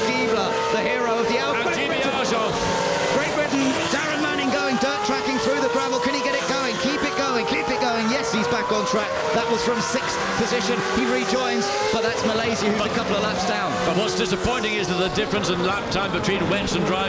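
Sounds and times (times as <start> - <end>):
racing engine accelerating: 0.0 - 17.0.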